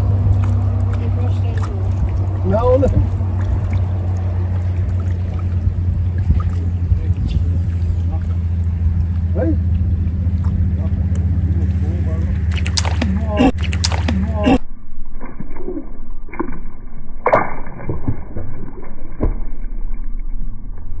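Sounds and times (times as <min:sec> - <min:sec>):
faint voice: 0:13.0 - 0:14.6.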